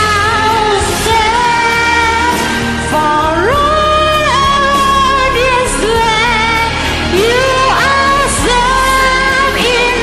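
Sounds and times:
backing music: 0:00.0 - 0:10.0
high voice singing: 0:00.0 - 0:10.0.

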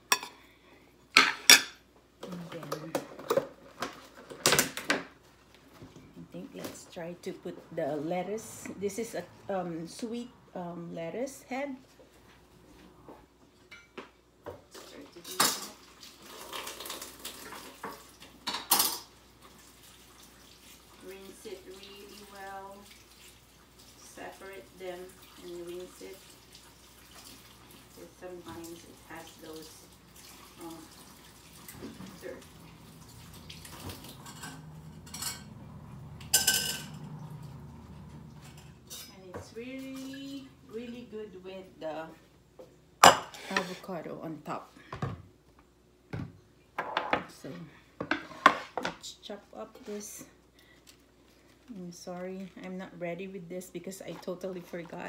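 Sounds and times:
dishes and utensils clanking: 0:00.0 - 0:00.4, 0:01.2 - 0:01.8, 0:33.7 - 0:37.6.

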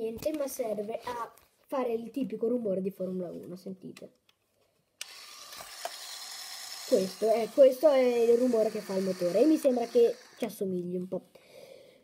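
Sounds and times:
small electric motor whirring: 0:05.0 - 0:10.6.

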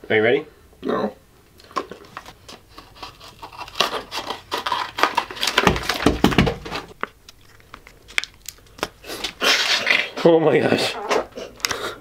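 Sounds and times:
plastic packaging crinkling and tearing: 0:01.6 - 0:10.1
dull bumps: 0:05.6 - 0:07.0.

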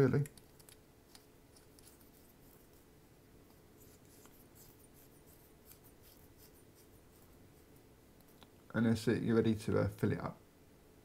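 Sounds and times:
small ticks and rubbing of metal parts: 0:00.0 - 0:02.9, 0:03.5 - 0:08.6.

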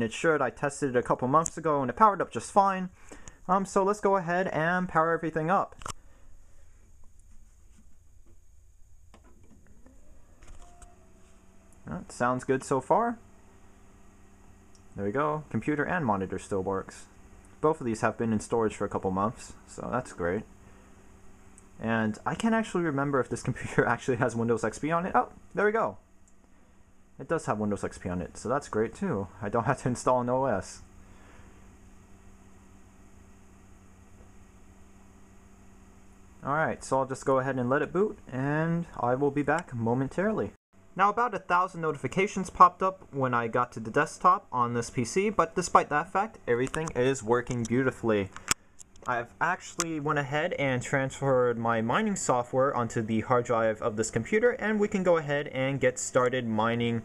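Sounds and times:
computer low hum: 0:00.0 - 0:57.0
faint rising whine: 0:00.0 - 0:57.0
brief tone: 0:09.8 - 0:11.9.

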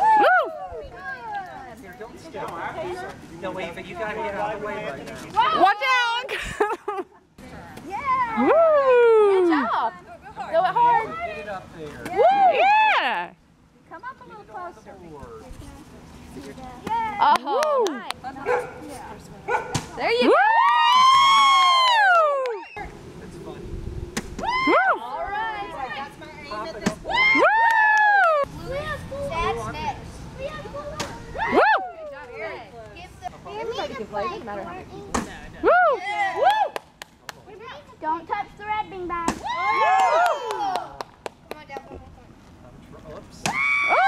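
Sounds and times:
children shouting and squealing: 0:27.0 - 0:32.7, 0:39.3 - 0:40.9.

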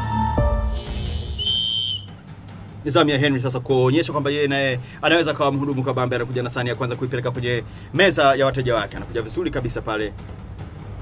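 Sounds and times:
whistle blown: 0:01.2 - 0:02.2.

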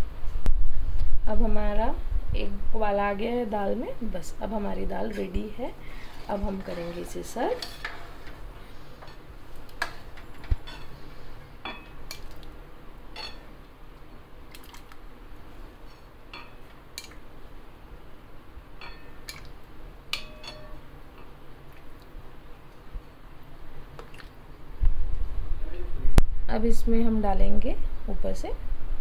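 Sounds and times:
steel ladle clinking on metal pot: 0:06.8 - 0:08.1, 0:13.2 - 0:13.4, 0:16.3 - 0:16.6, 0:18.8 - 0:19.2, 0:20.1 - 0:20.8
ladle clinking on glass bowl: 0:13.2 - 0:13.4, 0:18.8 - 0:19.2, 0:20.1 - 0:20.8.

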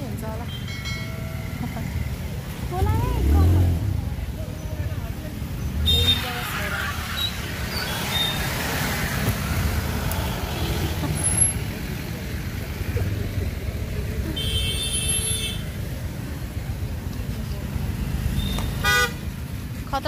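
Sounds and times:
vehicles idling in traffic: 0:00.0 - 0:20.0
vehicle horn honking: 0:18.4 - 0:19.2.

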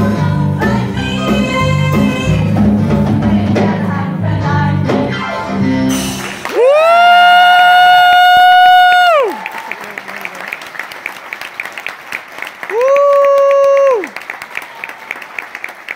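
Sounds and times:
audience applause: 0:06.2 - 0:15.9
audience whooping: 0:06.4 - 0:10.5, 0:12.6 - 0:15.9.

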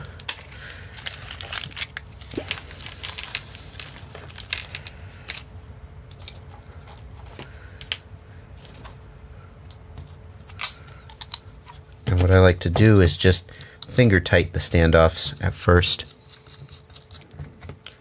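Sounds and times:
plastic bag crinkling: 0:00.2 - 0:05.5.

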